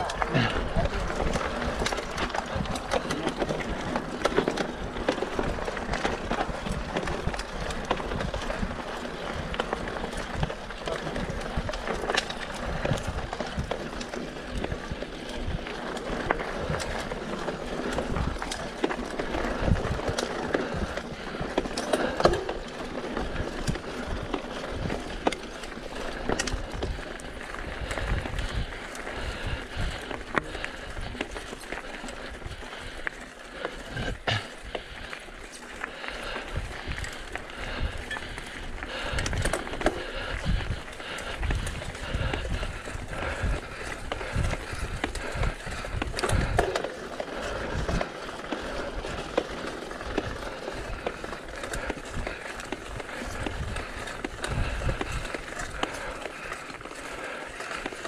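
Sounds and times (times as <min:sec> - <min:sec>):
bike rattling: 0:00.0 - 0:58.0
bike tyres crunching on stones: 0:00.0 - 0:58.0.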